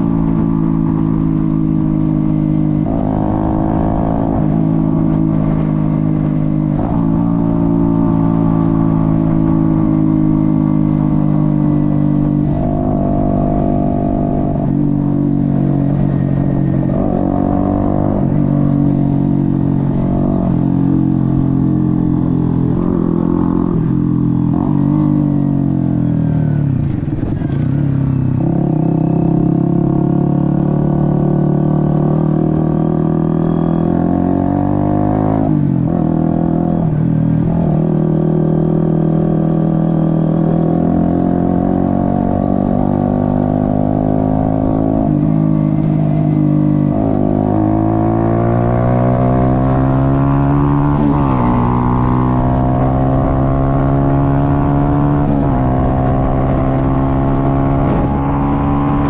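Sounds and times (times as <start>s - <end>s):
motorcycle engine running: 34.8s - 59.0s.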